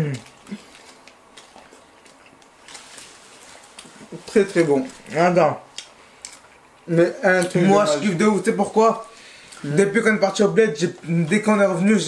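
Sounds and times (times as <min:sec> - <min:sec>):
chewing mouth sounds: 0:00.0 - 0:05.1.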